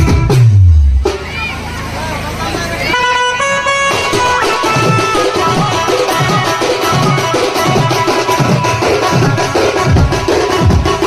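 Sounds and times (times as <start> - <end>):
band drumming: 0.0 - 11.0
melody instrument held notes: 1.4 - 11.0.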